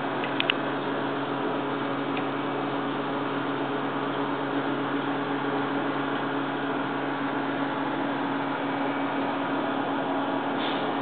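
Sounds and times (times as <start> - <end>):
aquarium equipment humming and hissing: 0.0 - 11.0.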